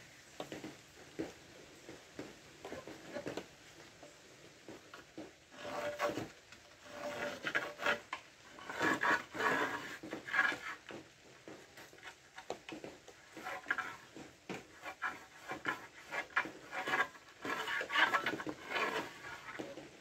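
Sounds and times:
tile sliding over tiles: 0:04.6 - 0:20.0
pencil scraping on tile: 0:05.6 - 0:10.9, 0:13.3 - 0:19.8.

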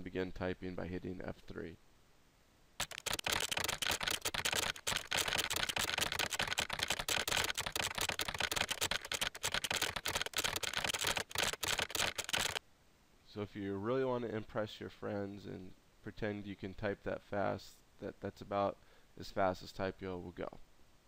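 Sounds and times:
fast keyboard keystroke clicks: 0:02.8 - 0:12.6.

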